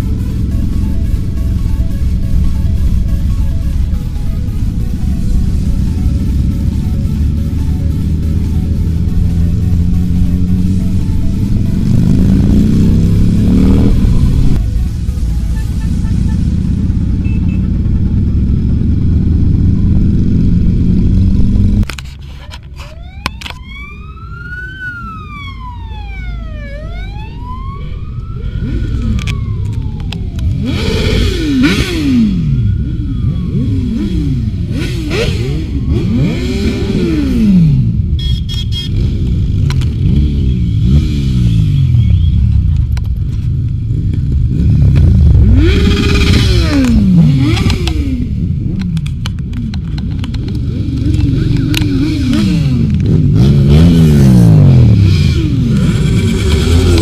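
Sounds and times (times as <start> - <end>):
motorcycles passing by: 0.0 - 21.8, 26.6 - 57.0
police siren wailing: 22.8 - 37.6.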